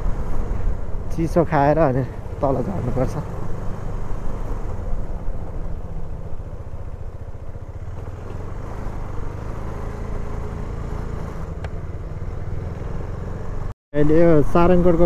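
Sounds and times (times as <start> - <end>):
motorcycle engine running: 0.0 - 15.0
road and wind noise: 0.0 - 15.0.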